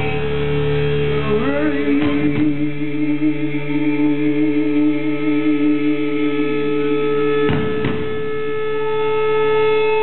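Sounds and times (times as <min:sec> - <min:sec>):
electric guitars holding a chord: 0:00.0 - 0:10.0.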